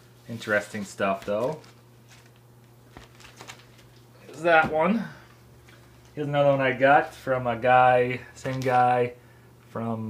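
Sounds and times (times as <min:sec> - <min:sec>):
steady low hum: 0:00.0 - 0:10.0
vinyl record sleeve rustling: 0:00.2 - 0:04.9, 0:08.4 - 0:09.1.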